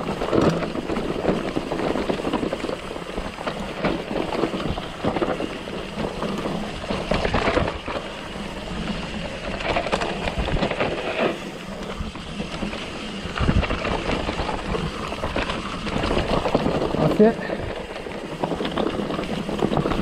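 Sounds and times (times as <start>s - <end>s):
bike rattling: 0.0s - 20.0s
tyres crunching over stones: 0.0s - 20.0s.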